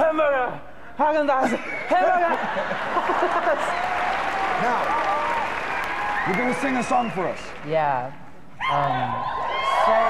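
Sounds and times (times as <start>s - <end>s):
audience applauding: 2.2s - 7.7s.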